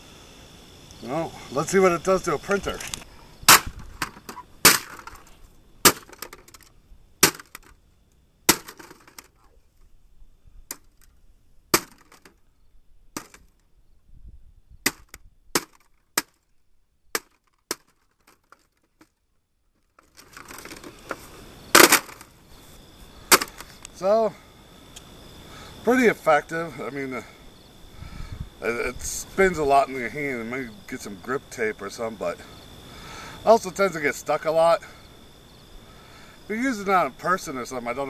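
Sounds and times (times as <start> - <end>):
plastic cracking and breaking: 2.8 - 5.3, 5.9 - 7.8, 8.5 - 9.3, 11.8 - 12.4, 14.9 - 16.4, 17.2 - 19.2, 19.8 - 22.3
club smashing plastic printer: 3.5 - 5.2, 5.9 - 6.6, 8.5 - 9.2, 11.8 - 12.3, 21.7 - 22.2.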